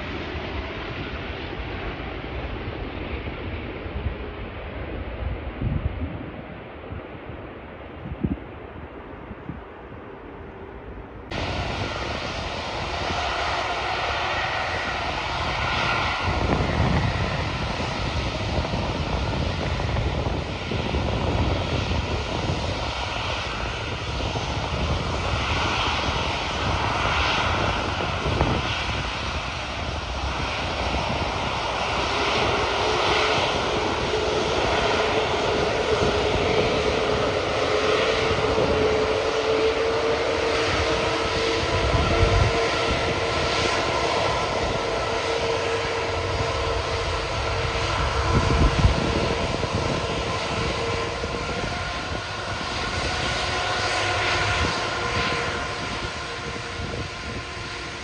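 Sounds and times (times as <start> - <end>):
jet engine whine: 0.0 - 58.0
jet engines roaring: 0.0 - 58.0.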